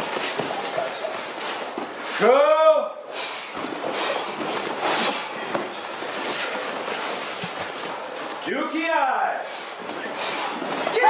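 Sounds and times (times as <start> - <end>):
bare feet slapping on mats: 0.0 - 2.2, 3.1 - 8.4
uniforms rustling and swishing: 0.0 - 2.3, 3.1 - 11.0.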